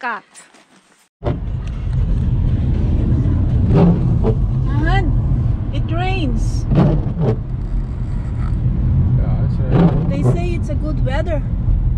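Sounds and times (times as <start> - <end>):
car road and engine noise: 0.8 - 11.9.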